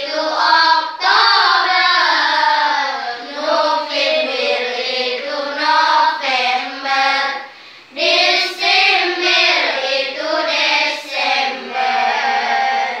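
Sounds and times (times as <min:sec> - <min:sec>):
children singing in unison: 0:00.0 - 0:13.0.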